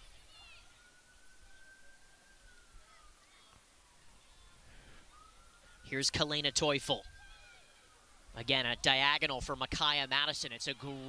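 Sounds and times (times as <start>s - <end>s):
faint long tone: 0.0s - 7.0s
faint outdoor field ambience: 0.0s - 11.0s.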